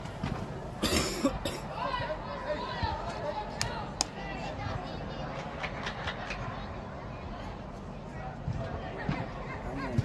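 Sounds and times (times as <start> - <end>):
distant voices in a hall: 0.0 - 10.0
person coughing: 0.8 - 1.6.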